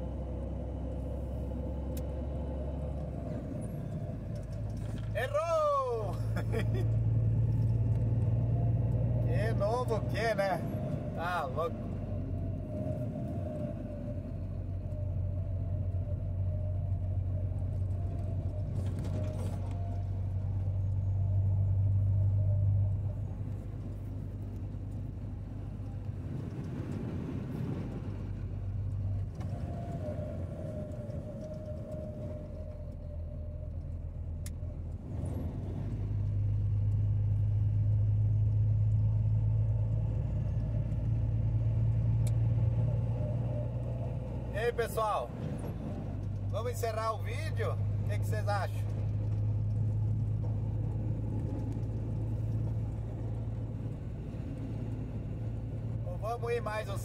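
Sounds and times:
road and wind noise: 0.0 - 57.0.

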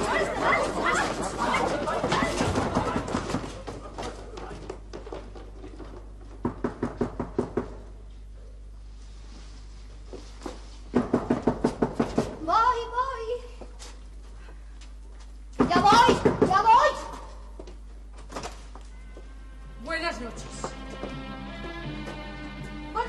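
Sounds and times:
rapid knocking on door: 0.5 - 3.8, 6.3 - 7.9, 10.9 - 12.4, 15.6 - 16.9.

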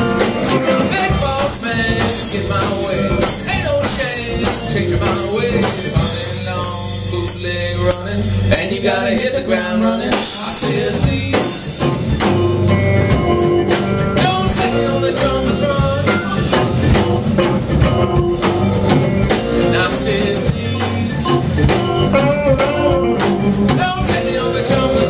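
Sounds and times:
bass guitar: 0.0 - 25.0
drum kit: 0.0 - 25.0
electric guitars: 0.0 - 25.0
keyboard: 0.0 - 25.0
pedal steel guitar: 11.8 - 25.0.

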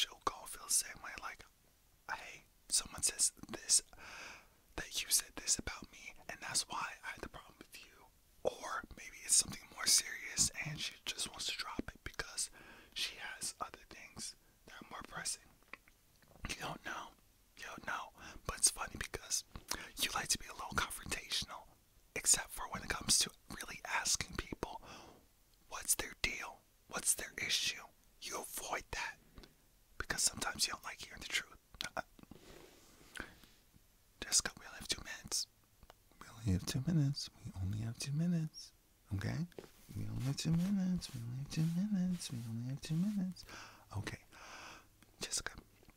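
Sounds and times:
man whispering: 0.0 - 1.5, 2.1 - 4.0, 4.8 - 15.6, 16.4 - 24.9, 25.7 - 29.2, 30.0 - 32.3, 34.2 - 35.5, 36.1 - 44.4, 45.0 - 45.7.

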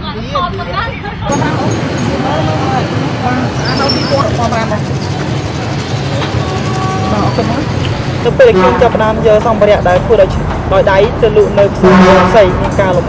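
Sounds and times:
traffic rumble: 0.0 - 13.0.

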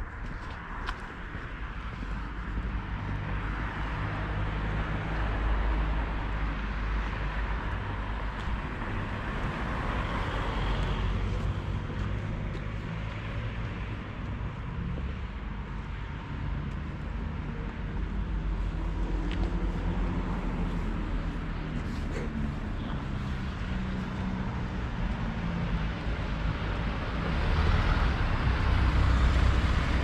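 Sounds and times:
road traffic noise: 0.0 - 30.0.

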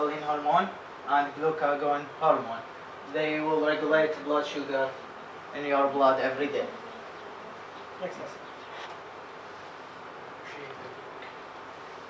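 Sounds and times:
low room noise hiss: 0.0 - 12.0
man speaking softly: 10.4 - 11.1.

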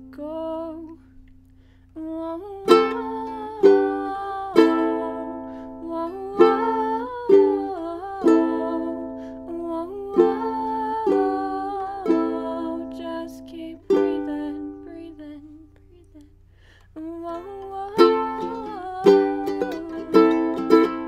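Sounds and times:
ukulele strumming chords: 2.2 - 15.7, 17.2 - 21.0.

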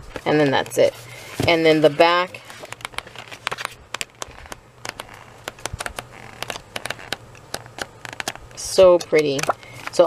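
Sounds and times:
paper pages flipping: 2.4 - 10.0.

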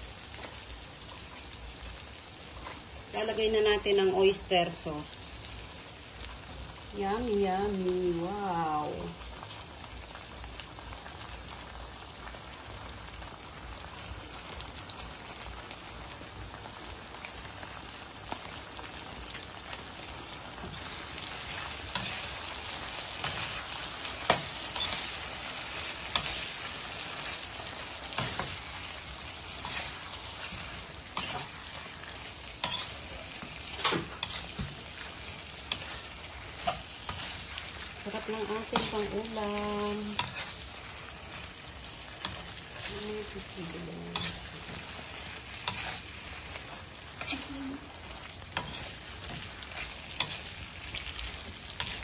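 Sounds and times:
shrimp sizzling in a wok: 0.0 - 52.0.

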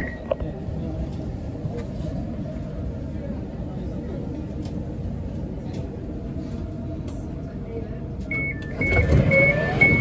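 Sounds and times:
station crowd noise: 0.0 - 10.0
sliding doors closing rumble: 8.4 - 10.0.

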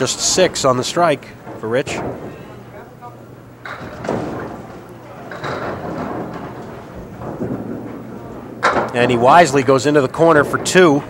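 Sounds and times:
crowd chatter in large hall: 2.2 - 11.0
bowling ball rolling on wooden lane: 3.6 - 11.0.

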